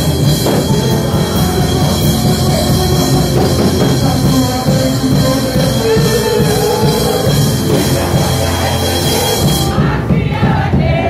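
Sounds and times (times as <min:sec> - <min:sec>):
congregation singing with band: 0:00.0 - 0:11.0.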